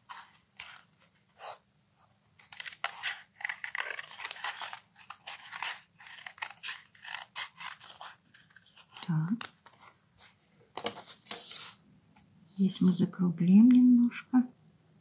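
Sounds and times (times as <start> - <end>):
scissors cutting card: 2.4 - 9.6.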